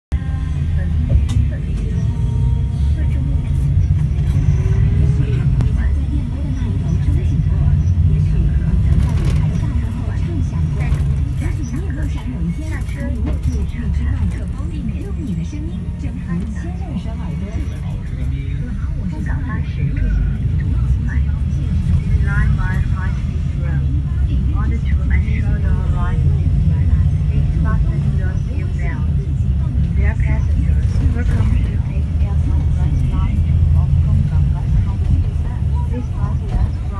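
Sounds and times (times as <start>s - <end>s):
bus engine rumble: 0.1s - 36.9s.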